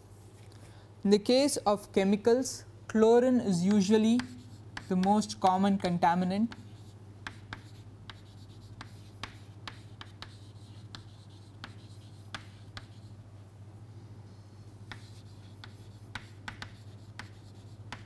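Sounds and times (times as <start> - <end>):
steady low hum: 0.0 - 18.0
chalk tapping and scratching: 3.7 - 13.2, 14.3 - 18.0.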